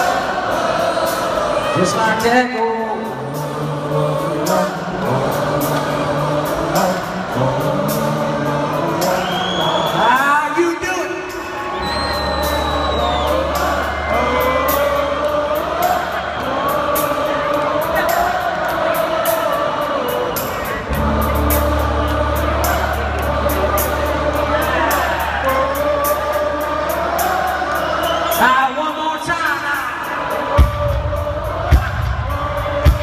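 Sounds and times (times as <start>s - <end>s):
crowd singing along: 0.0s - 33.0s
crowd whooping and cheering: 9.1s - 18.7s, 20.0s - 29.4s
country rock band playing: 20.5s - 28.0s
deep bass: 20.9s - 27.1s.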